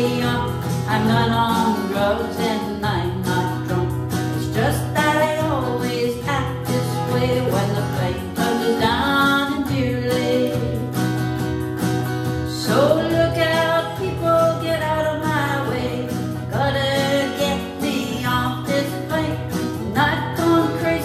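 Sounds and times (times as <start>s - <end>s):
strummed acoustic guitar: 0.0s - 21.0s
woman singing country song: 0.0s - 21.0s.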